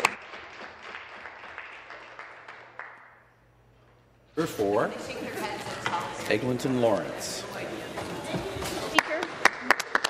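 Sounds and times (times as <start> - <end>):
people clapping: 0.0 - 3.4, 8.6 - 10.0.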